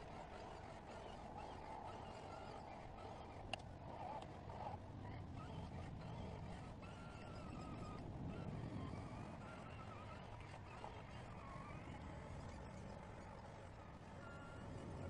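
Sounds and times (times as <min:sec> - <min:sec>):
electric motor whine: 0:00.0 - 0:15.0.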